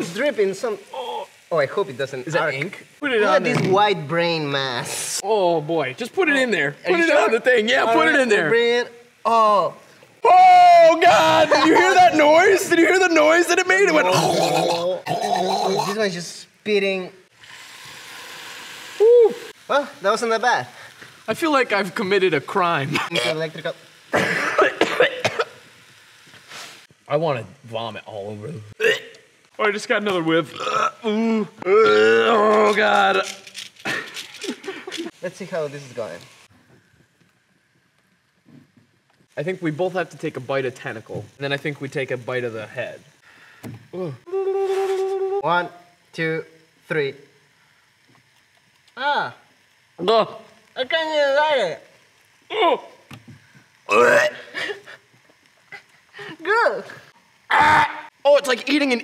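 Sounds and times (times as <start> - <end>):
octopus sizzling in a waffle iron: 0.0 - 59.0
man saying ooh: 0.8 - 1.5, 9.3 - 12.6, 19.0 - 19.5, 31.0 - 33.3, 43.9 - 45.8, 52.5 - 53.0, 57.5 - 58.2.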